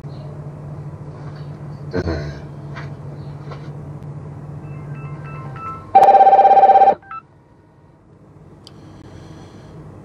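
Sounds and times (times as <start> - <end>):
low steady hum: 0.0 - 10.0
electronic telephone ringing: 5.3 - 7.2.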